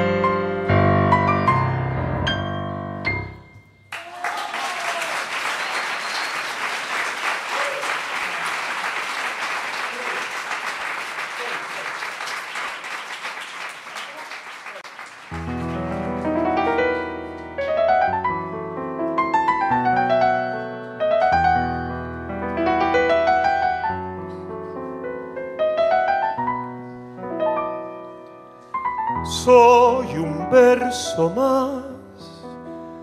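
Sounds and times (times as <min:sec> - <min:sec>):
piano playing: 0:00.0 - 0:04.0, 0:15.3 - 0:33.0
audience applauding: 0:03.9 - 0:17.1.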